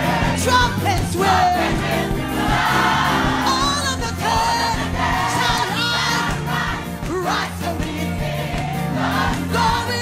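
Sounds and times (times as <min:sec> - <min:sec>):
choir singing gospel: 0:00.0 - 0:10.0
instrumental accompaniment: 0:00.0 - 0:10.0.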